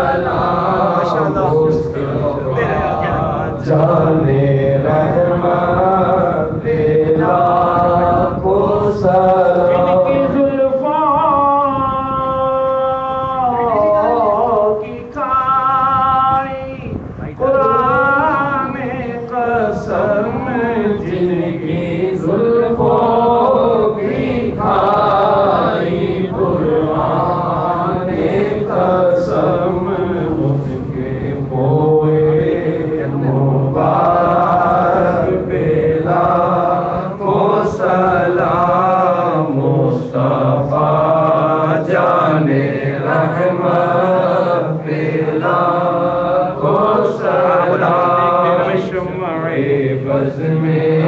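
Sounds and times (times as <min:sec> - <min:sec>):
man chanting into microphone: 0:00.0 - 0:51.0.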